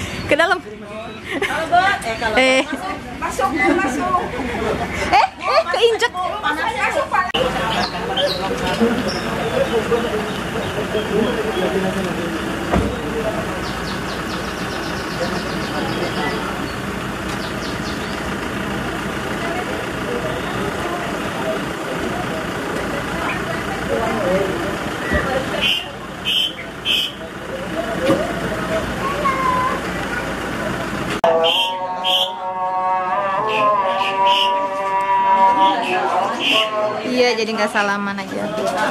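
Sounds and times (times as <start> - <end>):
people talking over one another: 0.2 - 38.9.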